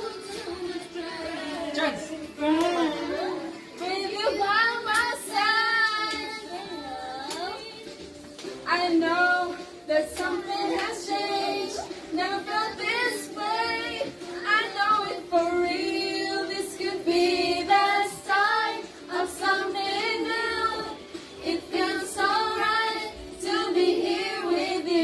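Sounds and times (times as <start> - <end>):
backing track music: 0.0 - 25.0
women singing karaoke: 0.0 - 25.0.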